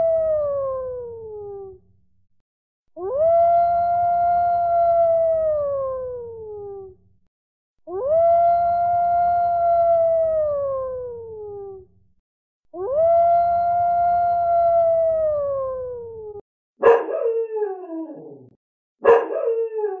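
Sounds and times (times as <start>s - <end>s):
recorded dog howls: 0.0s - 1.8s, 3.0s - 6.9s, 7.9s - 11.8s, 12.8s - 20.0s.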